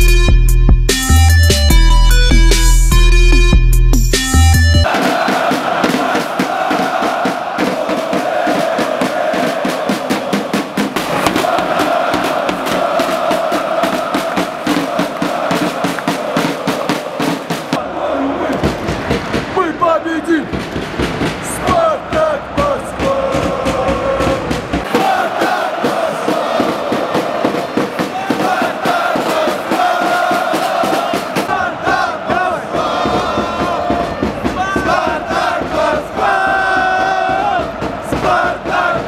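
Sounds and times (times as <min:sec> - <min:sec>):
sharp beats: 0:00.0 - 0:17.8
football crowd chanting: 0:04.8 - 0:39.0.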